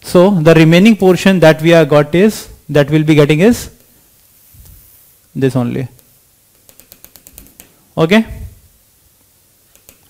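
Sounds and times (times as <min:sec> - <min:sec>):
stylus tapping on tablet screen: 0:06.5 - 0:07.8, 0:09.7 - 0:10.0.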